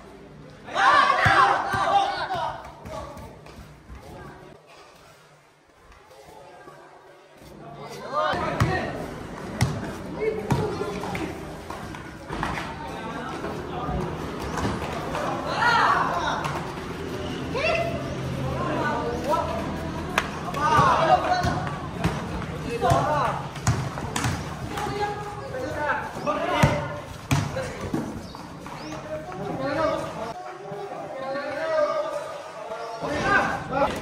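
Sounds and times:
players calling out: 0:00.5 - 0:03.4
basketball bouncing on concrete: 0:20.7 - 0:25.0, 0:26.5 - 0:28.1.

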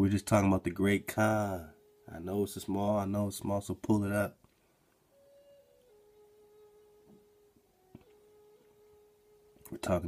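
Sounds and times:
faint held tone: 0:04.6 - 0:10.0.

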